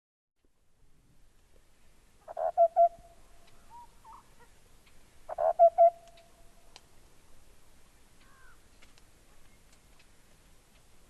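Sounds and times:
hooting animal call: 2.2s - 4.5s, 5.3s - 6.0s.

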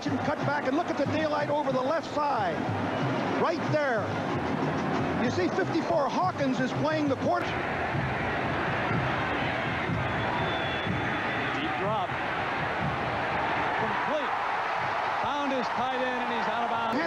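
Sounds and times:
stadium crowd roar: 0.0s - 17.0s.

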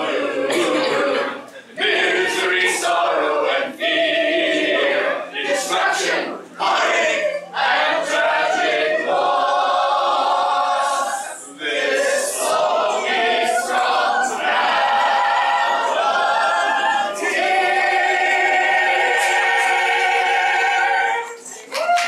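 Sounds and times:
voices singing a cappella: 0.0s - 21.7s.

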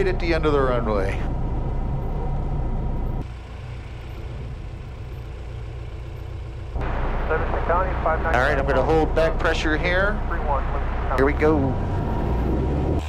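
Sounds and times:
light aircraft engine droning: 0.0s - 13.0s.

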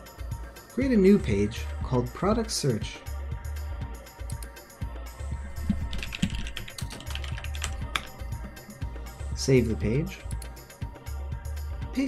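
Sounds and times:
background music with bass line: 0.0s - 12.0s
computer keyboard typing: 5.5s - 8.3s.

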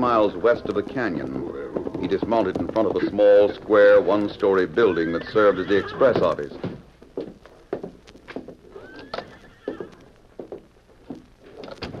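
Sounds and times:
horse hoof clops: 0.0s - 12.0s
horse whinny: 4.8s - 6.4s, 8.7s - 10.0s.

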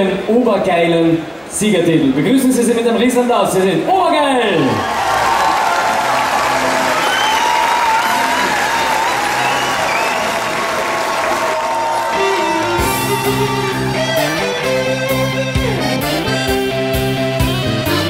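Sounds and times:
audience applauding and cheering: 4.7s - 14.6s
band with electric guitars: 5.0s - 18.0s
music bed: 12.1s - 18.0s.

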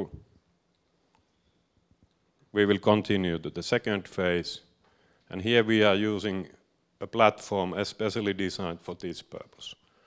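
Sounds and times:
man speaking: 0.0s - 0.2s, 2.5s - 4.7s, 5.3s - 9.8s.

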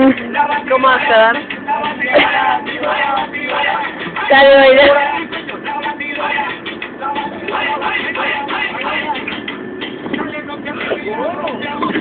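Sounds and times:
bus running noise: 0.0s - 12.0s
indistinct voices: 0.0s - 12.0s.

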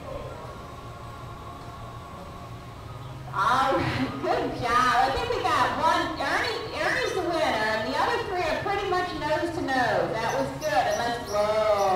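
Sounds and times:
people talking: 3.4s - 11.9s.

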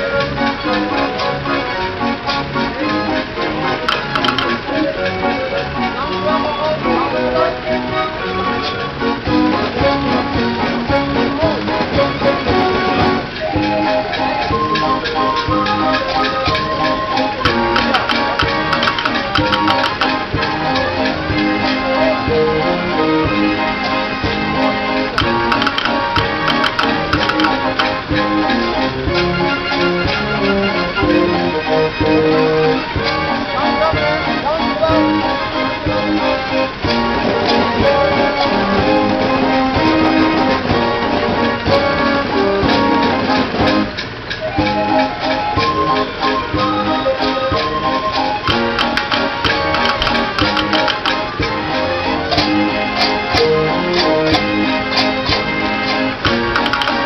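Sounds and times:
street organ playing lively melody: 0.0s - 57.0s
percussion strikes: 3.9s - 5.0s, 17.4s - 20.9s, 25.0s - 29.3s, 48.4s - 57.0s.

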